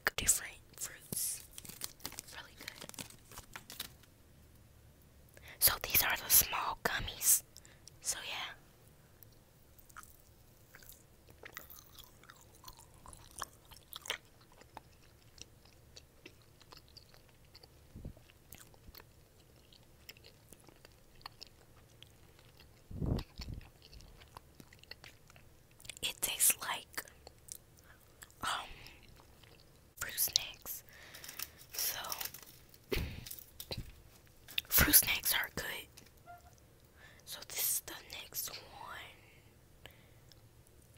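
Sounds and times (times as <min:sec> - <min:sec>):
chewing gummy candy: 0:01.1 - 0:03.8, 0:09.3 - 0:34.8.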